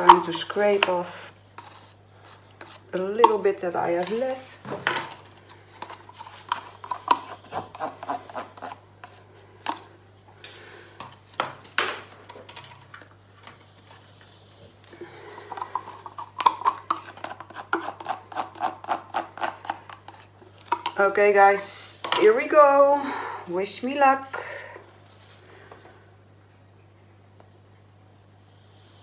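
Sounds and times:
scratchy rubbing strokes: 0:01.1 - 0:02.9.

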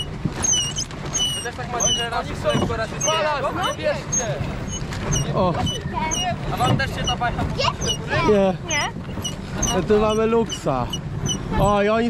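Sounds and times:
people talking and calling out: 0:00.5 - 0:12.0.

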